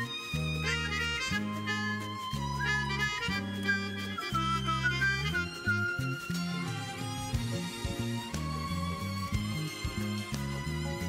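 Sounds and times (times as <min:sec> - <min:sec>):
instrumental theme music: 0:00.0 - 0:11.0.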